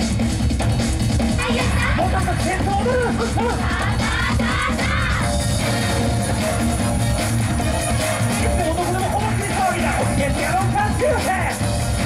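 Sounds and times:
amplified dance music: 0:00.0 - 0:12.0
dancers shouting together: 0:03.4 - 0:05.4.

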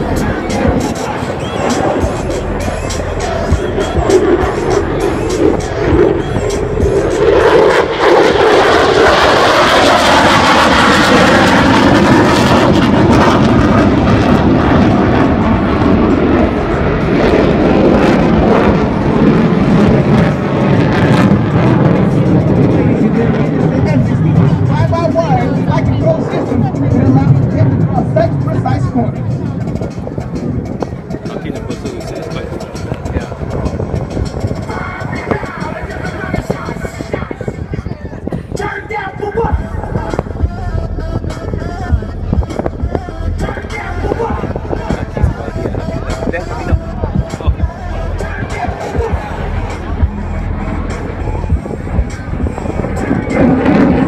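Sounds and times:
jet engine roar: 0:00.0 - 0:54.0.

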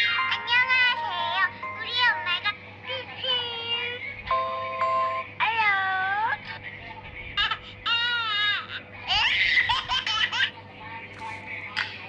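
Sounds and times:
child giggling: 0:07.4 - 0:10.6.

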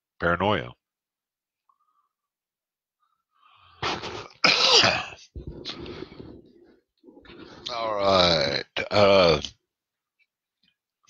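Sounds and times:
man coughing and clearing throat: 0:03.8 - 0:05.8.

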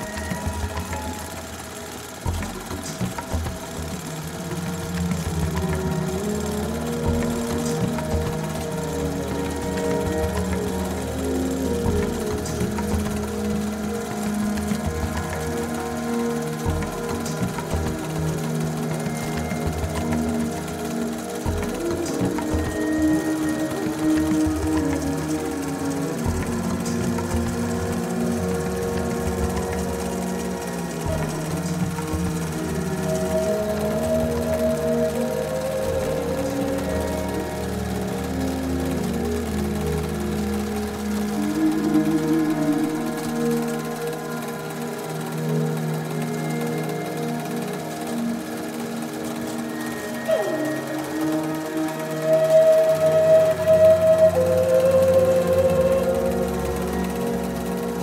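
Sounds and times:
background music: 0:00.0 - 0:58.0
embroidery machine stitching: 0:00.0 - 0:58.0.

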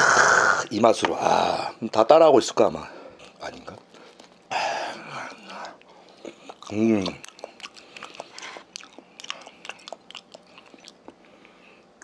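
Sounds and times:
wet mouth chewing clicks: 0:05.2 - 0:11.3.

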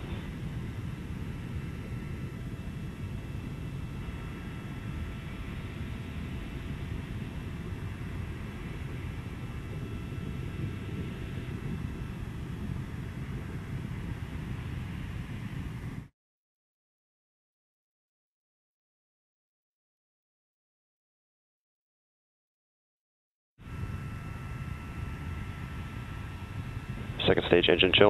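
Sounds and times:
rocket engines rumbling: 0:00.0 - 0:16.1, 0:23.7 - 0:28.0.

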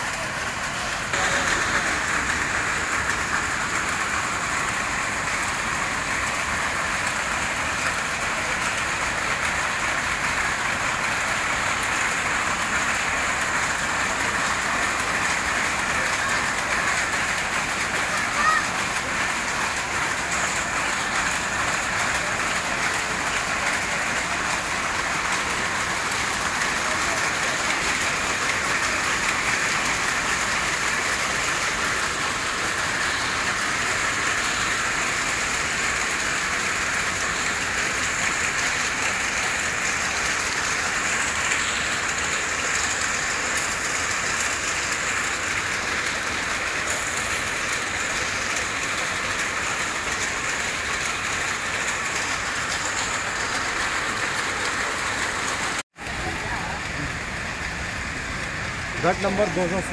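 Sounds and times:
steady hiss: 0:00.0 - 0:59.9.

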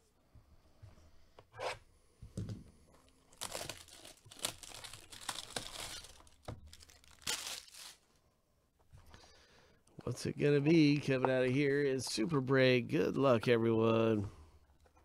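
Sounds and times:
plastic shrink wrap tearing: 0:03.3 - 0:08.0.

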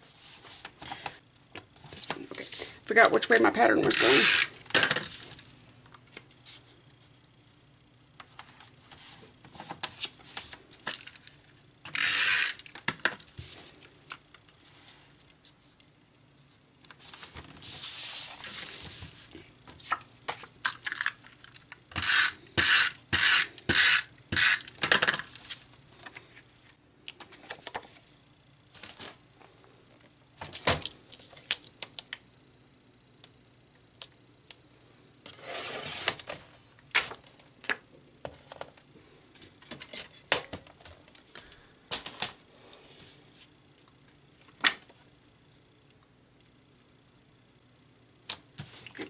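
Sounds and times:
paper sliding and rustling: 0:17.0 - 0:20.0, 0:35.3 - 0:36.3.

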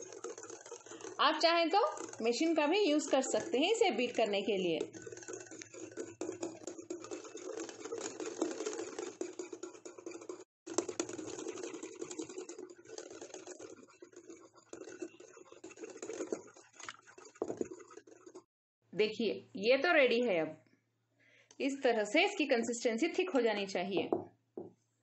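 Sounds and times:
whisk clicking against glass bowl: 0:00.0 - 0:18.5.

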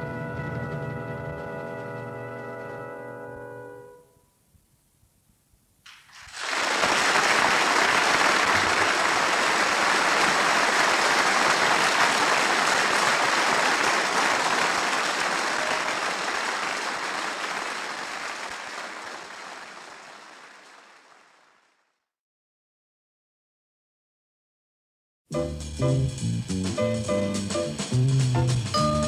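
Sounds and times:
audience applauding: 0:05.9 - 0:22.0.

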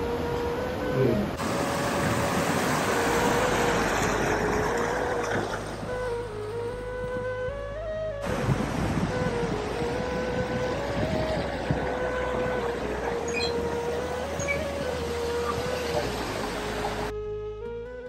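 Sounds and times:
rushing mountain stream: 0:00.0 - 0:07.0, 0:08.2 - 0:17.1
slow melodic background music: 0:00.0 - 0:18.0.

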